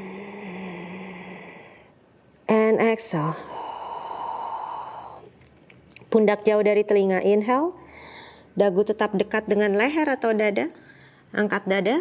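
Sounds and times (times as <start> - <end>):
woman breathing with hum: 0.0 - 2.0, 3.3 - 5.4, 7.8 - 8.6.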